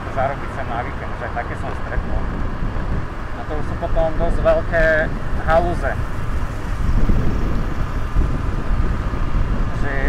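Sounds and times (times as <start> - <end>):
scooter engine: 0.0 - 9.8
wind on microphone: 1.6 - 10.0.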